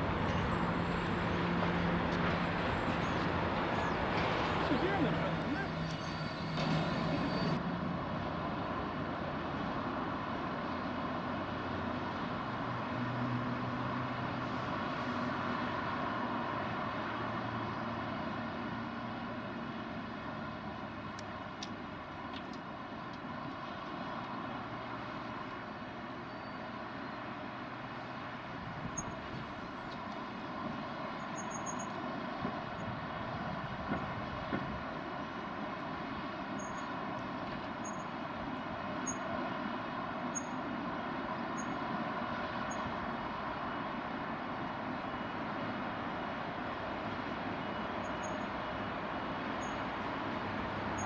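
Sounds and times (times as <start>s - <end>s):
freight wagons rolling rumble: 0.0s - 7.6s
distant freight train rumble: 0.0s - 10.6s, 11.3s - 51.0s
locomotive engine drone: 0.0s - 51.0s.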